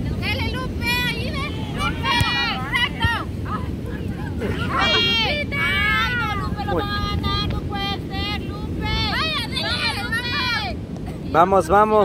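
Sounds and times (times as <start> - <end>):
women calling out and cheering: 0.0 - 10.9
wind rumble on microphone: 0.0 - 12.0.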